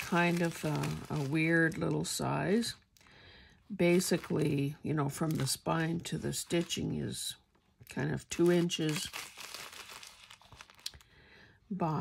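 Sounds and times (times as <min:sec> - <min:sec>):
tissue paper crinkling: 0:00.0 - 0:02.7, 0:03.8 - 0:07.2, 0:08.2 - 0:11.0.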